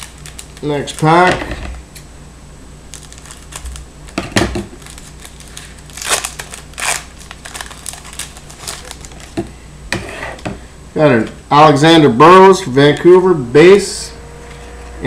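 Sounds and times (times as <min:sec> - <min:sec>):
foil wrapper crinkling and tearing: 0:00.0 - 0:01.3, 0:02.9 - 0:03.9, 0:04.7 - 0:09.4
scissors snipping foil: 0:04.8 - 0:09.3.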